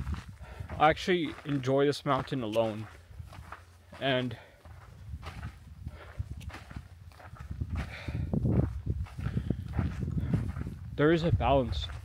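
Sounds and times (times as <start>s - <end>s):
footsteps on hiking trail: 0.0s - 12.0s.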